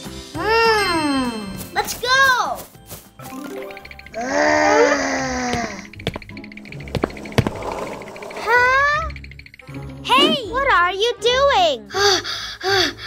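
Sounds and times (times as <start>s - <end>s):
background music: 0.0s - 13.0s
cartoon character groaning: 4.2s - 5.8s.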